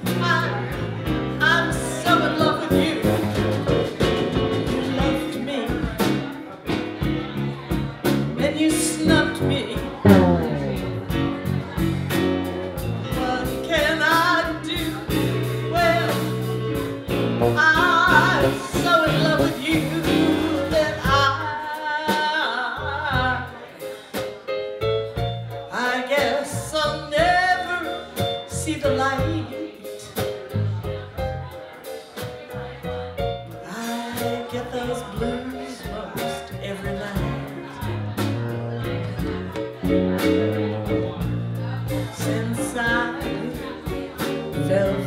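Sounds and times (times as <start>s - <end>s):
band with drums and keyboards: 0.0s - 45.0s
woman singing into microphone: 4.8s - 6.0s, 8.4s - 10.7s, 13.1s - 16.3s, 17.6s - 23.6s, 25.7s - 30.0s, 33.6s - 37.9s, 42.0s - 45.0s.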